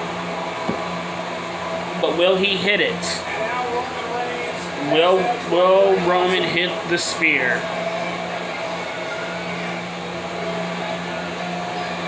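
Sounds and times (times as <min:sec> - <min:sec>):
mechanical whirring hum: 0:00.0 - 0:12.0.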